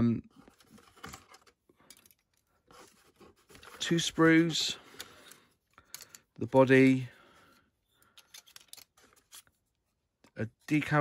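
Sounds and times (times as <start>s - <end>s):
plastic sprues clicking and rustling: 8.0s - 9.6s.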